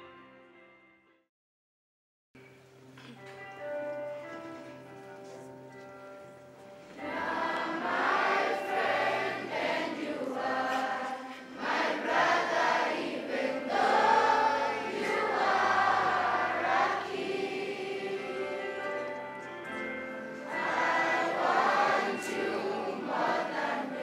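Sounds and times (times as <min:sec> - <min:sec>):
children's choir singing a hymn: 0:06.9 - 0:24.0.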